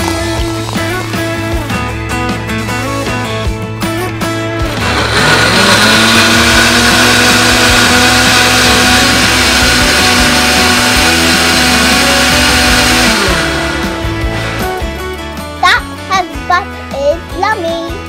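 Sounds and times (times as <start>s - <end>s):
blender motor running: 4.5s - 14.9s.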